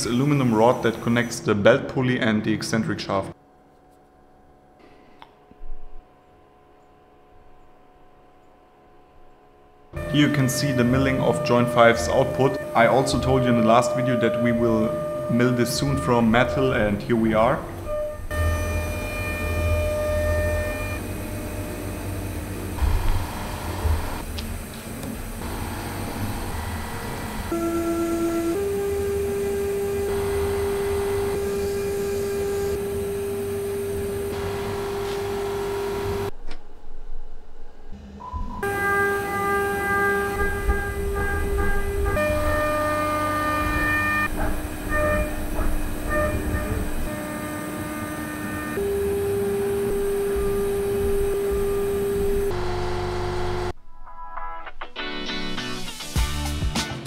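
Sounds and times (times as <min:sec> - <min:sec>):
milling machine cutting metal: 0:10.0 - 0:36.3, 0:38.7 - 0:53.7.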